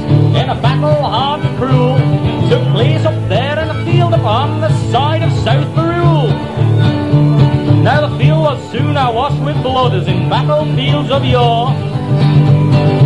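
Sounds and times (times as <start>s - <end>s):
low bass notes: 0.0s - 13.0s
strummed acoustic guitars: 0.0s - 13.0s
swooping bending lead melody: 0.0s - 13.0s.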